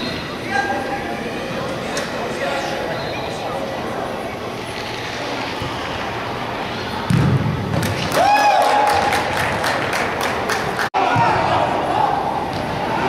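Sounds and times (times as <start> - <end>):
soccer ball thud: 7.1 - 8.1.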